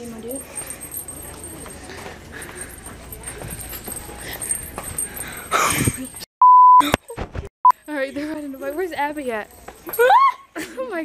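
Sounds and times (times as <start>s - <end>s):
faint voices: 0.0s - 6.2s.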